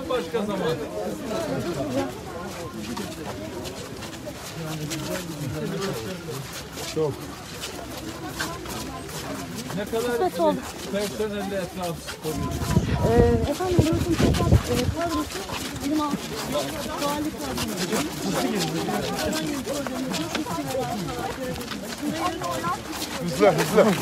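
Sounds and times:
people chattering: 0.0 - 24.0.

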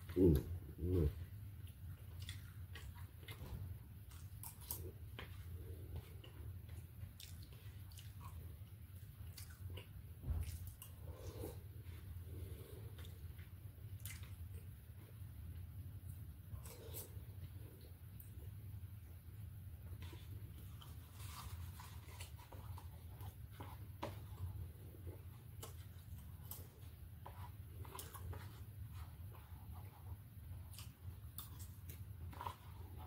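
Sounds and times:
man chewing food: 0.0 - 33.0
steady low hum: 0.0 - 33.0.

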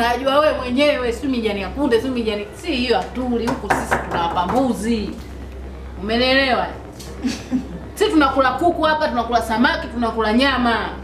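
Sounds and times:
woman speaking: 0.0 - 5.3, 6.0 - 6.8, 7.8 - 11.0.

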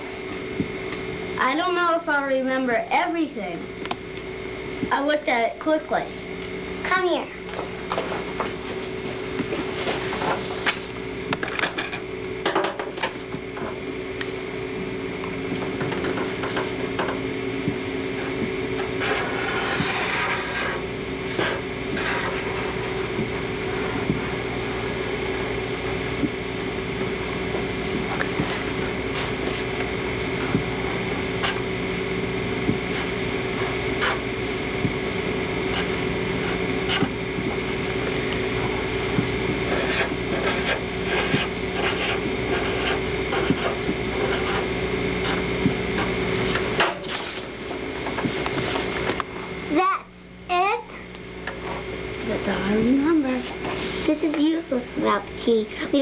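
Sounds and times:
steady hum: 0.0 - 56.0
pen scratching on paper: 19.0 - 22.6, 31.4 - 31.6, 35.7 - 37.1, 39.7 - 45.4.

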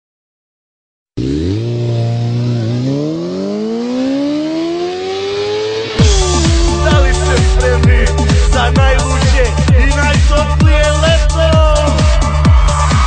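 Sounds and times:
car engine revving: 1.2 - 10.6.

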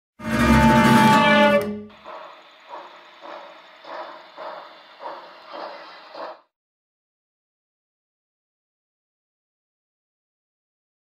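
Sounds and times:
steam locomotive chuffing: 0.6 - 6.5.

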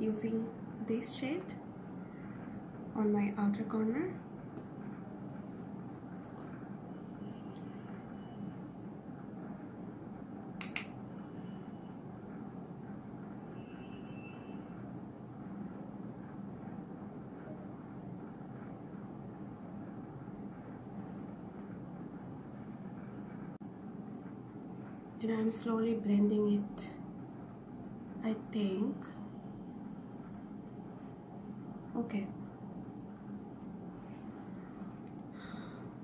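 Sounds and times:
low room hum: 0.0 - 36.0
sharp click: 10.6 - 11.0.

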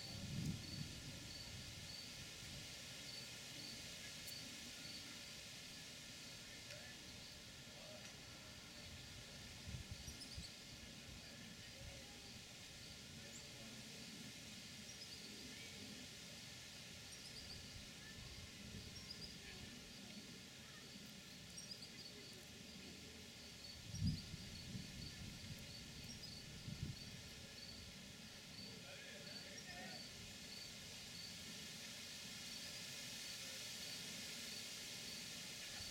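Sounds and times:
faint garden ambience: 0.0 - 35.9.

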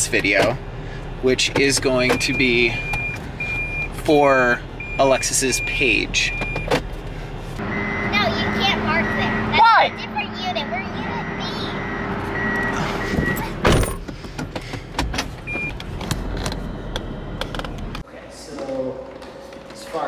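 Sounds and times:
car cabin hum: 1.2 - 3.3.

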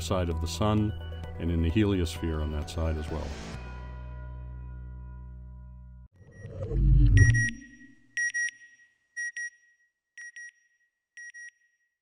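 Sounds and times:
electronic double beeps: 6.2 - 8.6.

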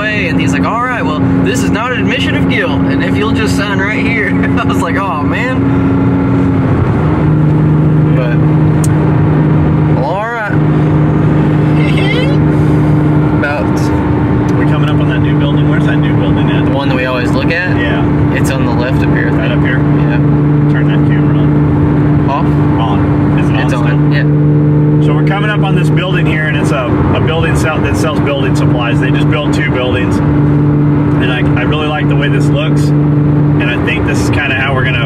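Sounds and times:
car engine and road noise: 0.0 - 35.0.

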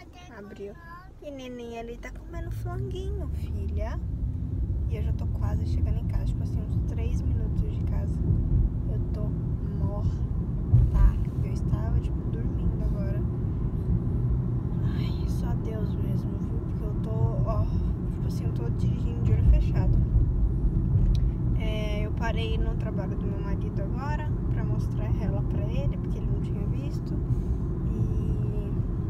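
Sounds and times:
road and engine rumble in car: 0.0 - 29.0.

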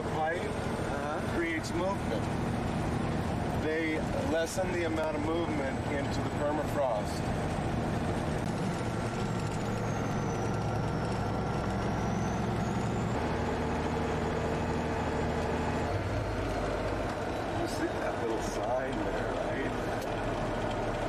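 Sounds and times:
truck engine drone: 0.0 - 21.0.

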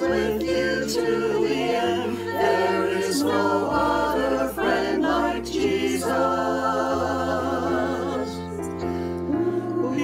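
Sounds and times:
mixed choir singing a hymn: 0.0 - 10.0.

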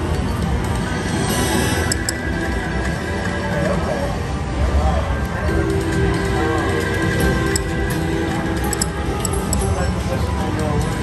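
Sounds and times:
slot machine electronic music: 0.0 - 11.0.

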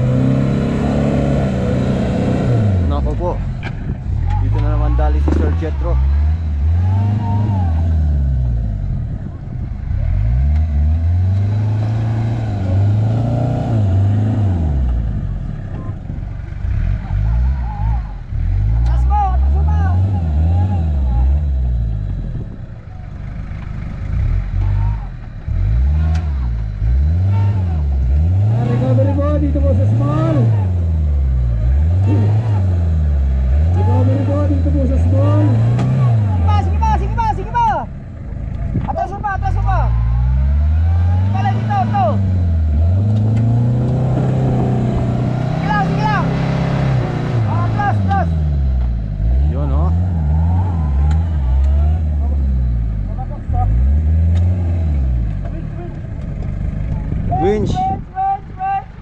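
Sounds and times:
off-road engine revving hard: 0.0 - 22.6, 23.2 - 37.9, 38.7 - 58.0
people's voices: 2.6 - 59.0.

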